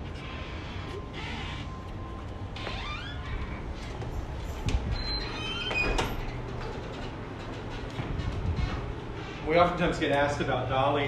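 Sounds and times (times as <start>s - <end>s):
steady low hum: 0.0s - 11.0s
door closer squeal: 0.2s - 1.9s, 4.9s - 6.3s.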